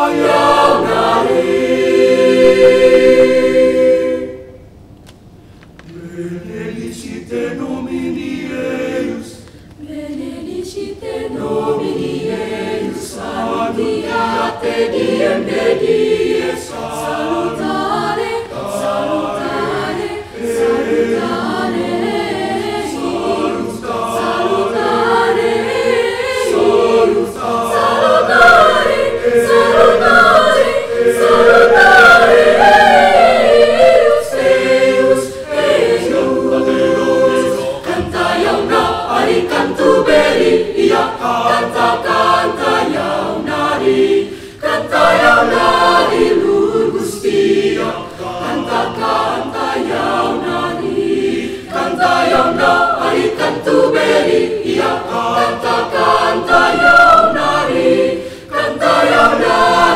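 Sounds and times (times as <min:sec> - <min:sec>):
children's choir singing in parts: 0:00.0 - 0:04.7, 0:05.9 - 0:59.9.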